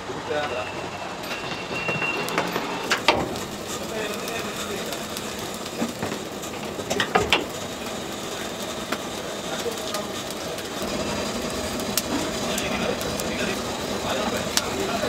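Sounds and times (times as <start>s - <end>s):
steady mechanical noise: 0.0s - 15.0s.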